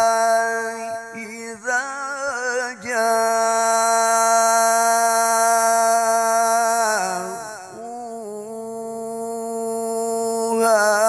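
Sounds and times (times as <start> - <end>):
man reciting melodically over speakers: 0.0 - 11.0.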